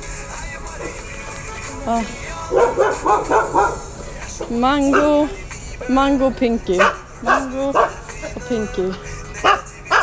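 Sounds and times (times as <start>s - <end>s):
dog barking: 2.5s - 3.9s, 4.9s - 5.3s, 6.8s - 8.0s, 9.4s - 10.0s.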